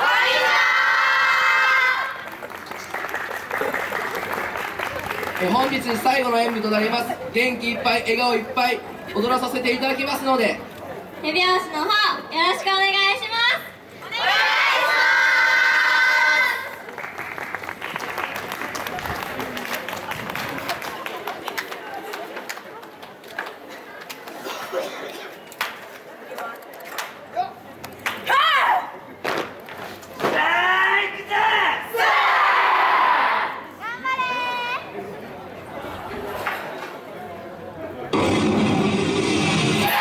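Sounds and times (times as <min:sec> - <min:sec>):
crowd noise: 0:00.0 - 0:40.0
scattered claps: 0:16.8 - 0:24.4, 0:25.5 - 0:27.2, 0:27.8 - 0:28.3.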